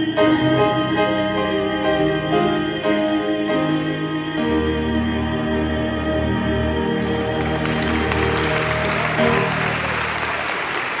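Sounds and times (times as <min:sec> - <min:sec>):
audience applause: 0:07.0 - 0:11.0.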